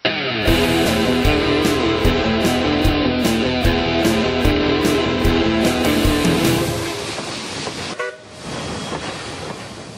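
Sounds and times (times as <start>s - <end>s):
train rumble: 0.5s - 9.9s
train horn toot: 7.9s - 8.4s.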